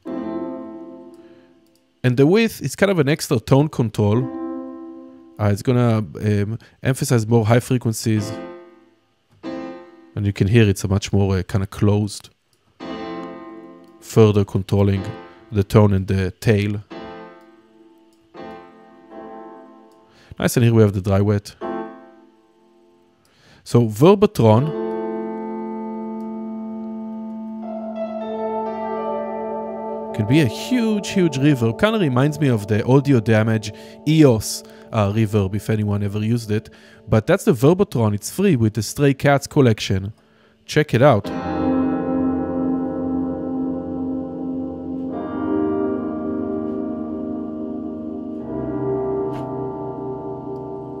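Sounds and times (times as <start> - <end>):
piano chord with reverb wash: 0.0 - 1.6, 24.7 - 37.1, 41.2 - 51.0.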